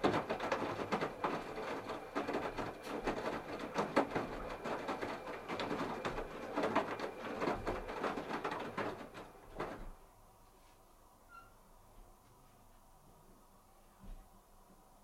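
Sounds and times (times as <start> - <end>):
washing machine drum turning: 0.0 - 10.0.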